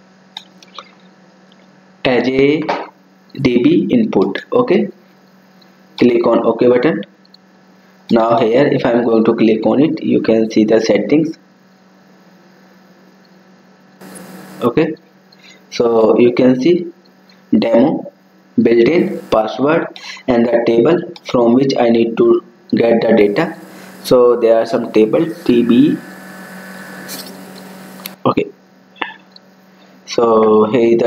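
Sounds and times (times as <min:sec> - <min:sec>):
electrical hum with hiss: 0:00.0 - 0:31.0
burst of higher hiss: 0:14.0 - 0:14.7, 0:18.9 - 0:19.5, 0:23.2 - 0:28.2
background hiss: 0:14.0 - 0:16.0, 0:18.6 - 0:20.3, 0:22.7 - 0:28.3.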